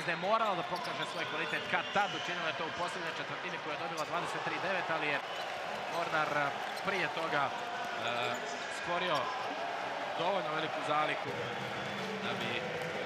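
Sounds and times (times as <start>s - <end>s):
voices in a hall: 0.0s - 13.0s.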